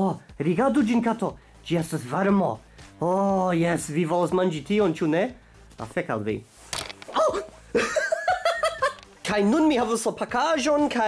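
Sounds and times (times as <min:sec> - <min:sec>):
man laughing: 0:07.7 - 0:09.0.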